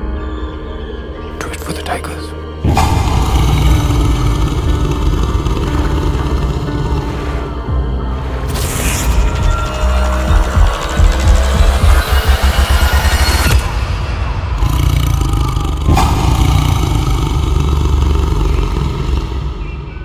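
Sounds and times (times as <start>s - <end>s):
low sustained drone: 2.4s - 20.0s
low pulsing build: 2.5s - 20.0s.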